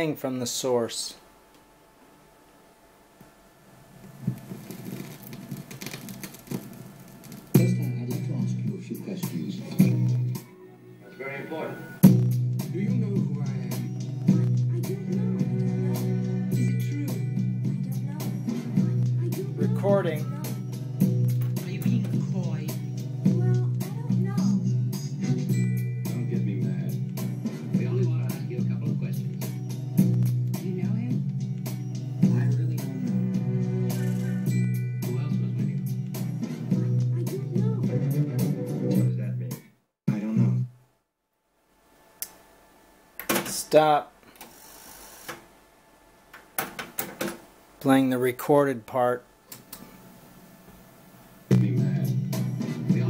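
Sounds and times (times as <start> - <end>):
music with bass and beats: 7.5 - 10.5, 12.0 - 39.3, 51.5 - 53.0.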